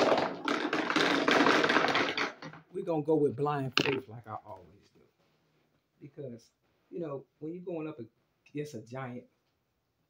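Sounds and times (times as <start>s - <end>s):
pool balls clattering and rolling: 0.0s - 4.2s.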